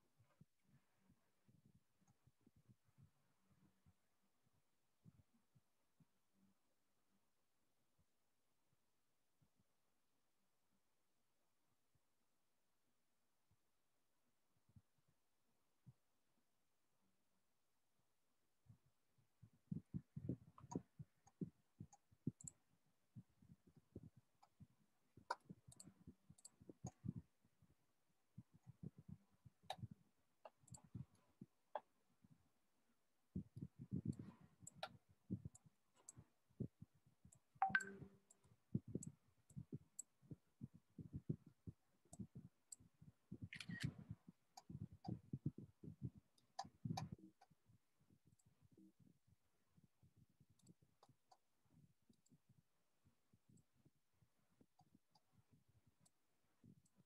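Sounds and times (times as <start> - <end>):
computer clicks and taps: 24.0 - 27.3, 37.3 - 40.1.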